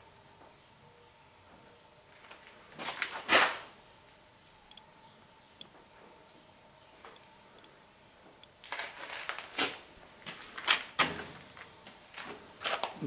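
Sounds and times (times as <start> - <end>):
scuffs and scrapes: 2.2 - 3.8, 8.6 - 13.0.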